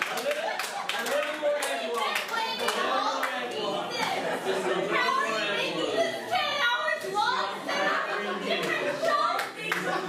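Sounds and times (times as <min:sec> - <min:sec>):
hand claps: 0:00.0 - 0:02.8
voices and chatter: 0:00.0 - 0:10.0.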